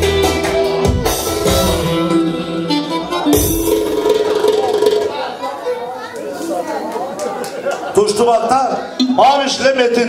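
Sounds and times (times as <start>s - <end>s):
people talking in a hall: 0.0s - 10.0s.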